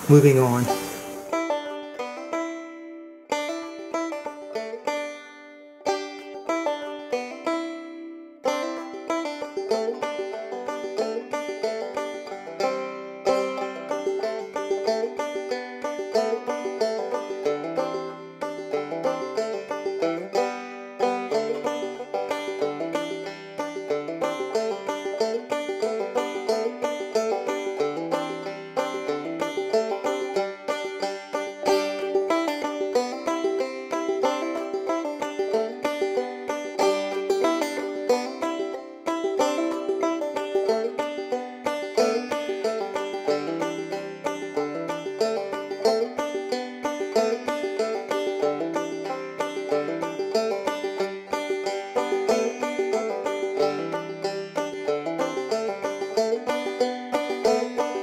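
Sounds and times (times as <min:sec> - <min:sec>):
picked banjo music: 0:00.0 - 0:58.0.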